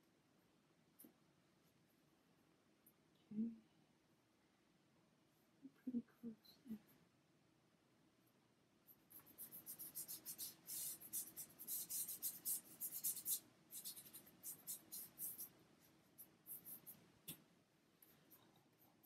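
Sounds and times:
paintbrush strokes on wood: 8.9 - 17.1.

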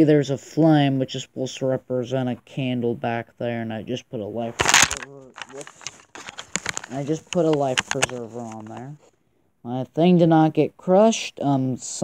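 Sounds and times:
camera handling clicks and rustles: 4.6 - 9.0.

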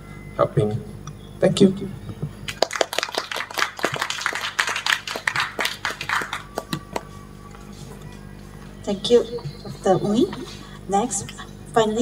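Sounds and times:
audience applause: 2.5 - 7.2.

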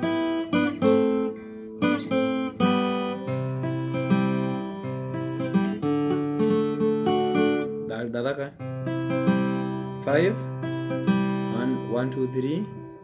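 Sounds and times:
acoustic guitar picking: 0.0 - 13.0.

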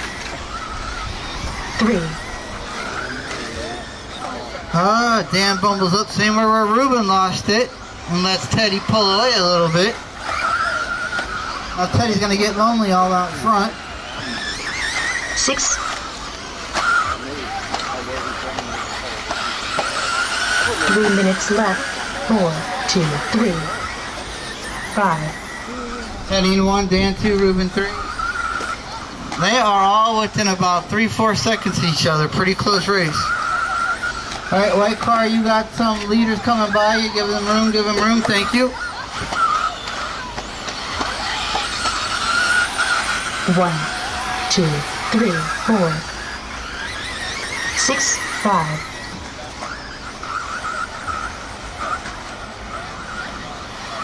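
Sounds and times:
people talking: 0.0 - 16.0, 16.8 - 54.0
high electric motor whine: 0.0 - 54.0.

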